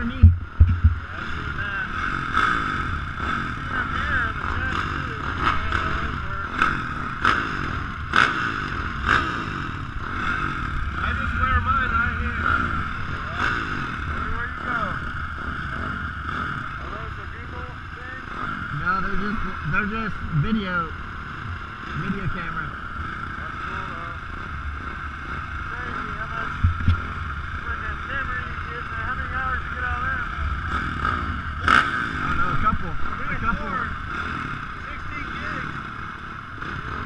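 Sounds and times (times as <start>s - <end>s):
dirt bike engines idling: 0.0s - 37.0s
voices talking: 0.0s - 37.0s.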